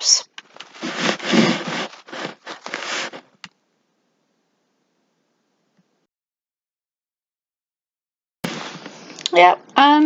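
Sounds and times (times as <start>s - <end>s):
hands rubbing and scraping on table: 0.4s - 3.4s.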